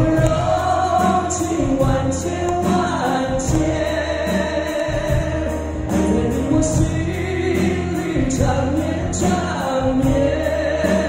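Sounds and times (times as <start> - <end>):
live rock band playing: 0.0 - 11.0
man singing through pa: 0.0 - 11.0.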